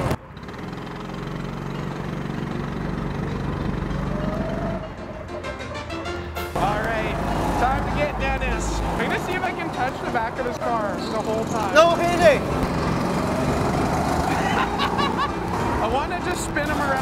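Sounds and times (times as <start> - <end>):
go-kart engine humming: 0.0 - 17.0.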